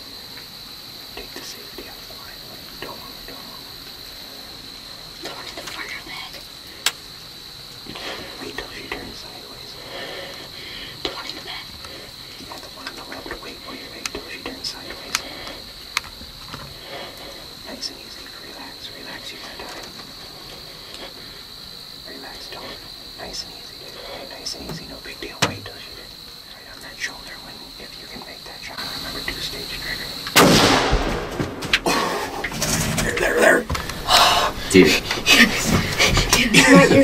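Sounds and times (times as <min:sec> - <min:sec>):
hushed whispering: 0:01.2 - 0:03.7, 0:05.2 - 0:06.5, 0:07.9 - 0:15.7, 0:16.8 - 0:21.2, 0:22.0 - 0:30.2
rustles: 0:01.4 - 0:37.0.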